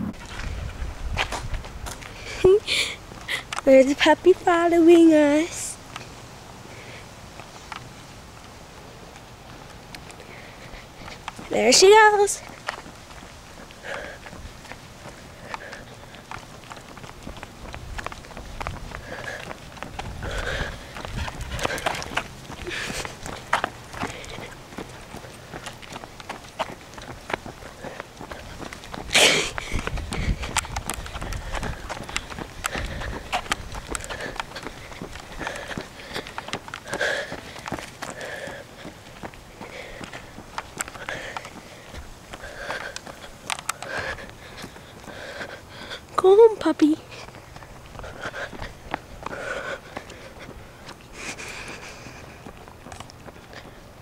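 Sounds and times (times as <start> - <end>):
footsteps on pavement: 0.0 - 54.0
handheld camera rustling and clicking: 12.4 - 45.2, 47.1 - 53.8.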